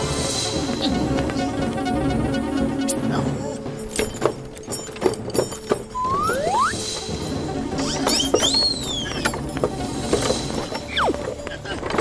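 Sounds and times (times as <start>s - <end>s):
cartoon background music: 0.0s - 12.0s
quick rising whistles: 6.0s - 7.0s, 7.8s - 9.2s.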